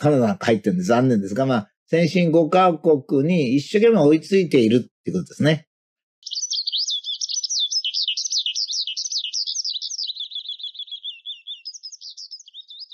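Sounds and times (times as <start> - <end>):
bird chirping and warbling: 6.2 - 12.9.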